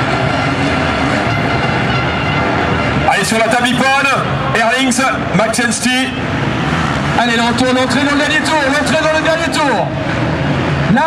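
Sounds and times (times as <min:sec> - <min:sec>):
motorcycle engines running hard: 0:00.0 - 0:11.0.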